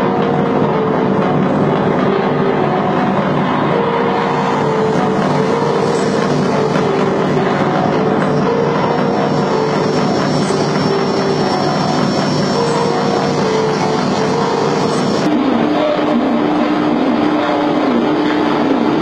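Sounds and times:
experimental electronic noise music: 0:00.0 - 0:19.0.

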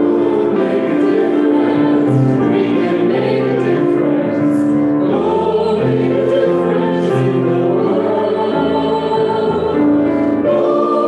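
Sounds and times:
piano accompaniment: 0:00.0 - 0:11.0
voices singing a hymn: 0:00.0 - 0:11.0.

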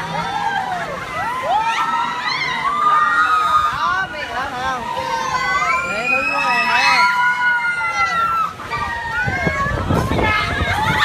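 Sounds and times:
riders screaming and shouting: 0:00.0 - 0:11.0.

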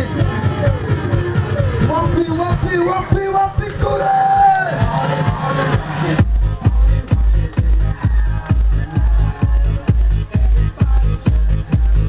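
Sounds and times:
crowd noise: 0:00.0 - 0:12.0
loud dance music: 0:00.0 - 0:12.0.

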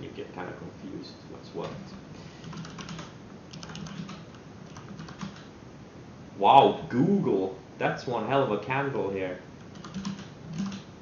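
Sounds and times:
typing on computer keyboard: 0:02.4 - 0:05.5, 0:09.6 - 0:10.9.

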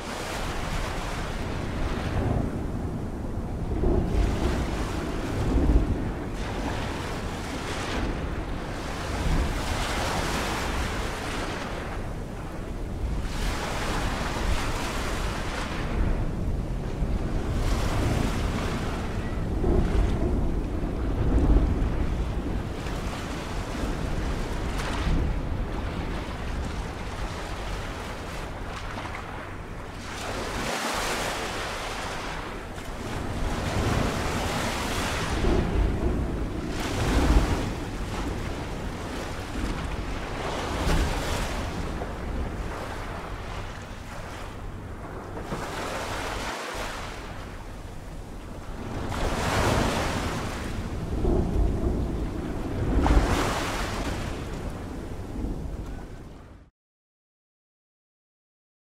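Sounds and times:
ocean waves: 0:00.0 - 0:56.7
wind: 0:00.0 - 0:56.7.

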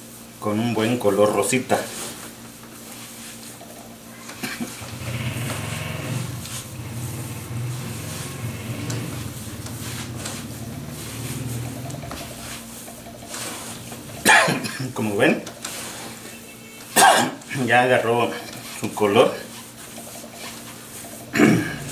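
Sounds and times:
hands kneading dough: 0:00.0 - 0:21.9
low hum: 0:04.8 - 0:13.1.

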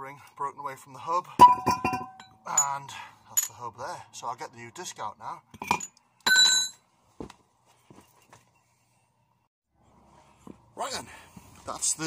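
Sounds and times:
metal tool ringing on tarmac: 0:01.4 - 0:02.8, 0:05.6 - 0:06.8.

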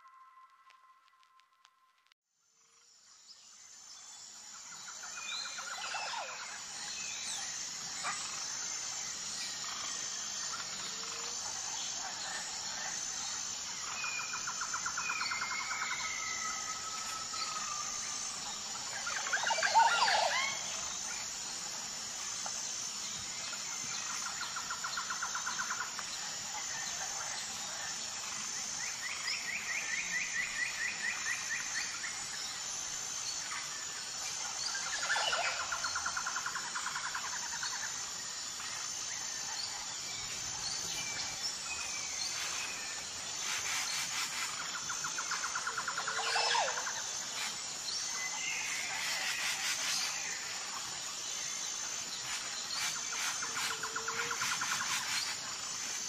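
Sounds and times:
steady high-pitched hiss: 0:00.0 - 0:56.0.

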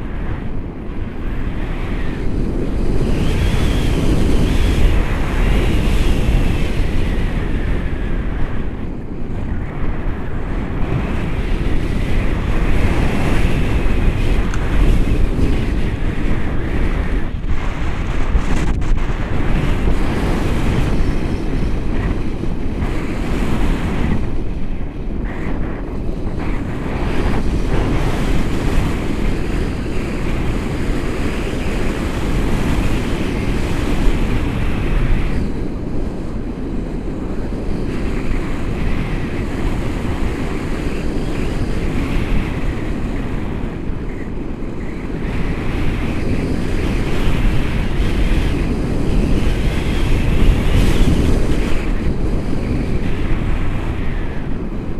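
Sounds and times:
wind rushing over microphone: 0:00.0 - 0:54.9.

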